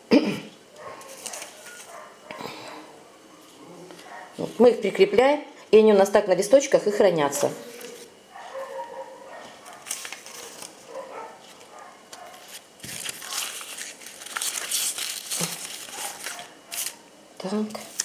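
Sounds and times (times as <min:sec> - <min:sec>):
paper rustling and crinkling: 0:00.8 - 0:02.1, 0:09.3 - 0:17.0, 0:17.7 - 0:18.0.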